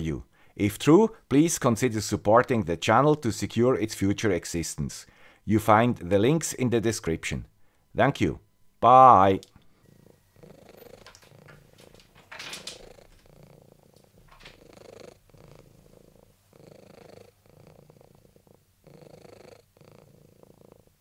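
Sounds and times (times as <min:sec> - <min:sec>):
cat purring softly: 0:09.7 - 0:21.0.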